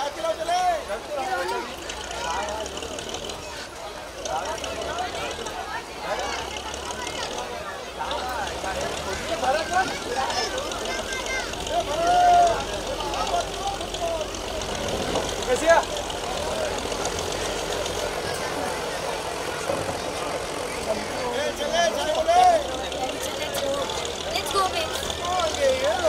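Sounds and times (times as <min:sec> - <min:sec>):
low engine hum: 0:00.0 - 0:26.0
people talking at once: 0:00.0 - 0:26.0.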